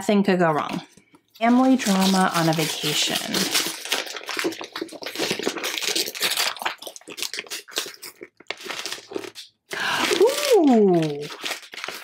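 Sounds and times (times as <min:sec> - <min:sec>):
wrapping paper crinkling and tearing: 0:00.7 - 0:12.0.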